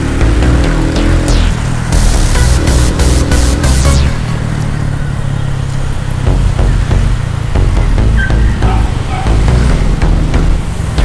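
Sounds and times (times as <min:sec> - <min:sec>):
electronic music with heavy bass: 0:00.0 - 0:04.8, 0:06.3 - 0:11.0
motorcycle engine running: 0:00.0 - 0:11.0.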